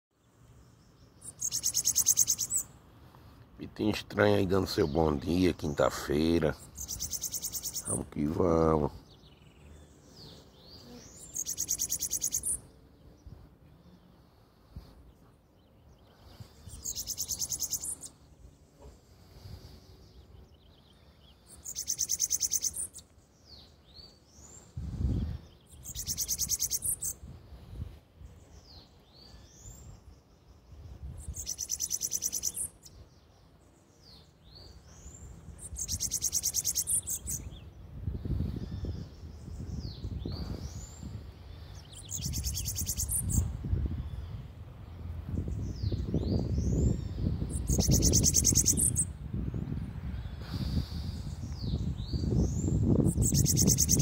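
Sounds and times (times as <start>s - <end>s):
soft thin bird chirps: 0.2s - 3.5s, 4.7s - 44.5s, 45.5s - 49.2s, 50.0s - 54.0s
bird buzzing trills: 0.6s - 2.8s, 6.6s - 8.0s, 9.1s - 27.3s, 28.2s - 43.5s, 45.6s - 49.2s, 52.2s - 54.0s.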